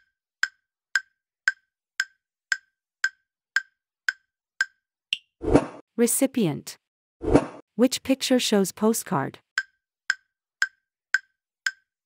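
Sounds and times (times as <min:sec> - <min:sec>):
clock-like timer ticks: 0:00.0 - 0:05.3, 0:09.6 - 0:12.0.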